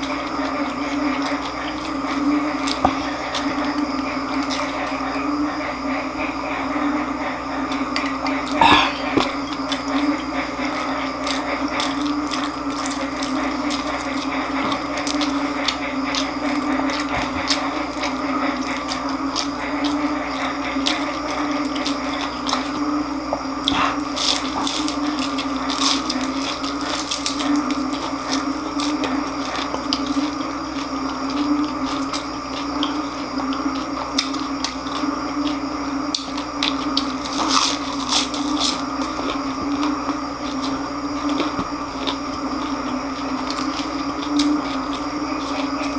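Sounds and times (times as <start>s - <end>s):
crunching and wet chewing: 0.0s - 45.9s
steady low hum: 0.0s - 45.9s.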